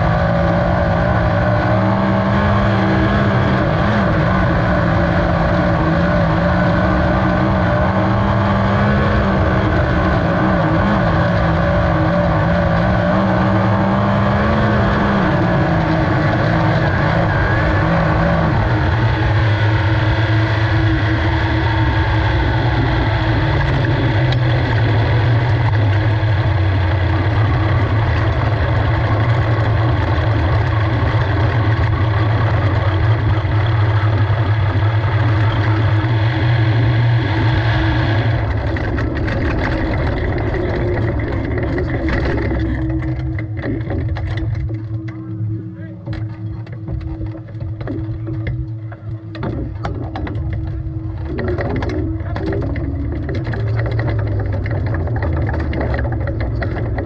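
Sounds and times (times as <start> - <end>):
race car engine slowing down: 0.0 - 57.0.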